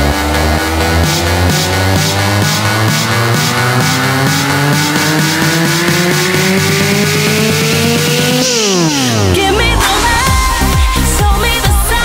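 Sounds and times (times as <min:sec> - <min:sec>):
quick electronic beat: 0:00.0 - 0:12.0
synth riser: 0:00.0 - 0:12.0.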